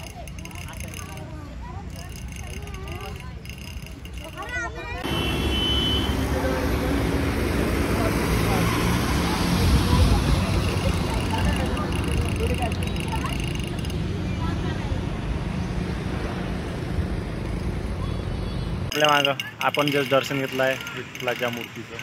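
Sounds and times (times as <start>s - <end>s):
faint voices: 0.0s - 5.2s, 7.8s - 15.6s
cars passing on road: 0.0s - 22.0s.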